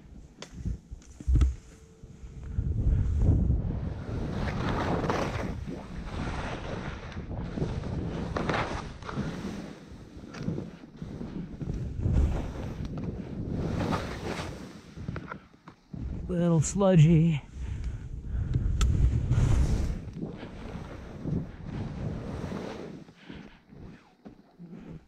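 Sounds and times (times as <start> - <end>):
wind rumbling on microphone: 0.5 - 16.5, 17.1 - 24.0
skis scraping through wet snow: 4.1 - 15.2, 19.4 - 24.1.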